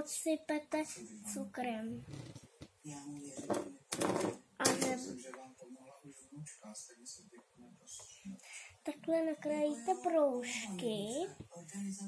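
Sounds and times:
child speaking: 0.0s - 2.0s, 8.9s - 11.3s.

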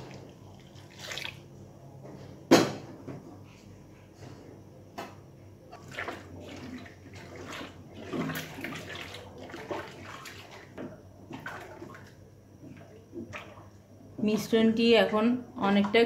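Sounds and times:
liquid sloshing and splashing: 0.0s - 1.5s, 5.7s - 13.8s
paddle stirring liquid in pot: 5.7s - 13.8s.

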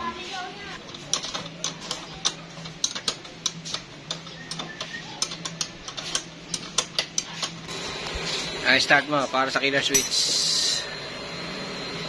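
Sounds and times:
ratchet wrench clicking: 1.1s - 7.4s.

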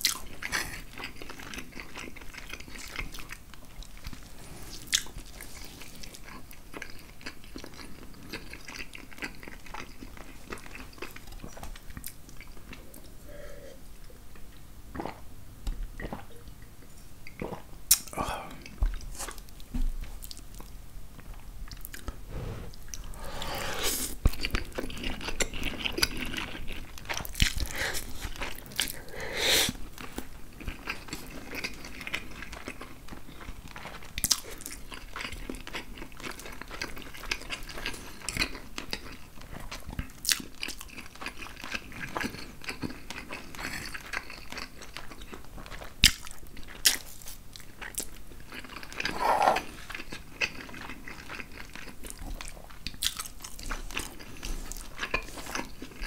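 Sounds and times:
wet chewing and slurping: 21.7s - 56.0s
swallow: 21.9s - 24.4s.

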